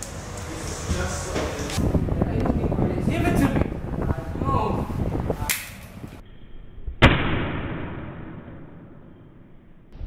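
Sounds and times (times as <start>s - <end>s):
sharp bang: 7.0s - 9.0s.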